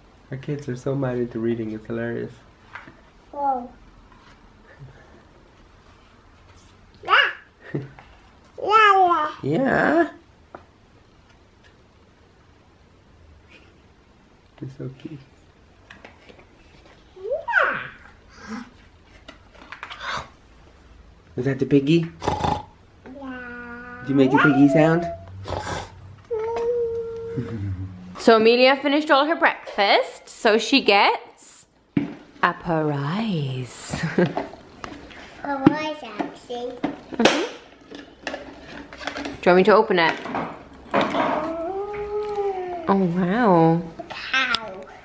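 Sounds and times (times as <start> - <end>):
person saying ooh: 24.0 - 25.5, 26.3 - 28.2, 41.5 - 42.9.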